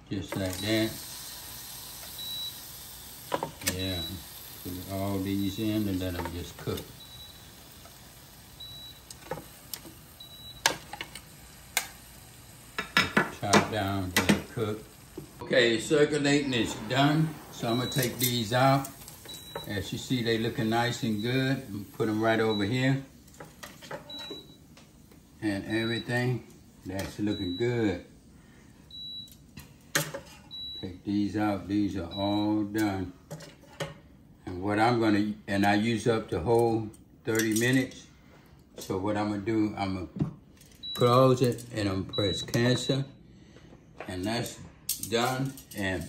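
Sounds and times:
cooker beeping: 0:00.0 - 0:33.2, 0:40.8 - 0:43.2
tongs and skewers clicking on grill: 0:06.1 - 0:12.1.

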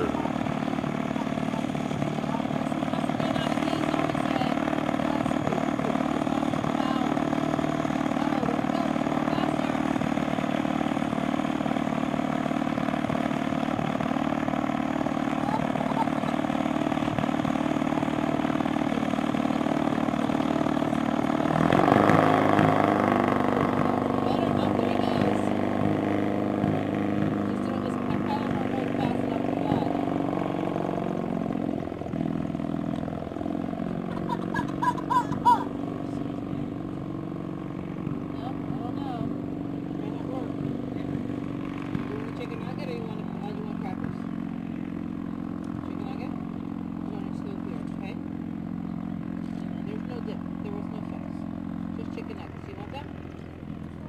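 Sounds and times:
gyrocopter engine idling and revving: 0:00.0 - 0:54.0.

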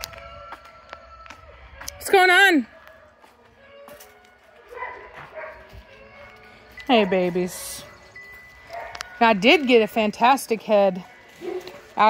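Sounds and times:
dogs whining and yipping: 0:04.0 - 0:09.8, 0:11.0 - 0:12.0.

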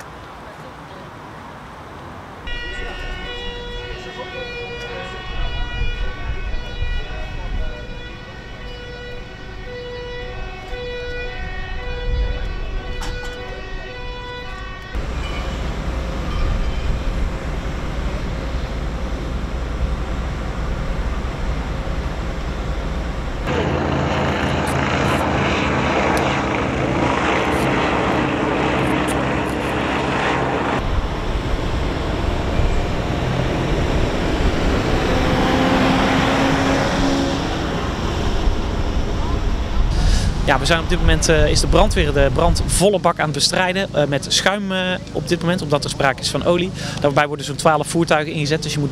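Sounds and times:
two-tone siren: 0:02.4 - 0:40.0
boat engine drone: 0:02.4 - 0:48.9
helicopter overhead: 0:02.4 - 0:48.9.

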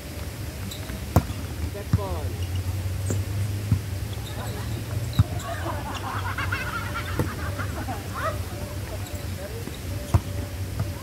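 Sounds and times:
players' voices: 0:00.1 - 0:11.0.

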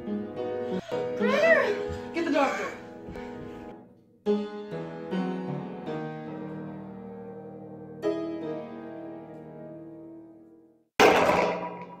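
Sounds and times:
piano chords ringing: 0:00.0 - 0:10.8.

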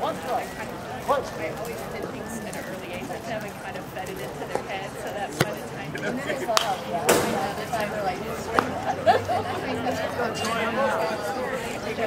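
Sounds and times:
spectators chatting: 0:00.0 - 0:12.0.

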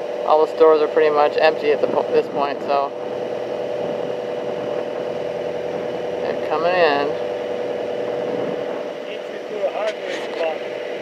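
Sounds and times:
engine drone: 0:00.0 - 0:11.0.

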